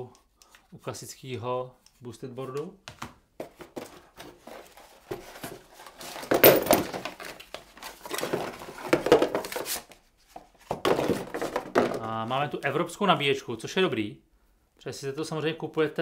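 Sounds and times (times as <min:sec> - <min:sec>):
cardboard rustling and scraping: 0:03.4 - 0:11.9.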